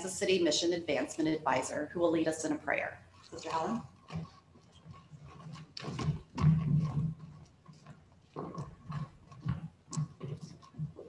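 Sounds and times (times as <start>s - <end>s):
footsteps on stage floor: 3.1s - 11.0s.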